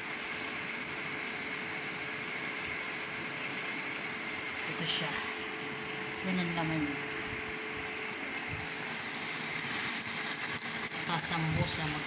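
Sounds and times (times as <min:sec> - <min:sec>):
food frying in a pan: 0:00.0 - 0:12.0
kitchen appliance hum: 0:00.0 - 0:12.0.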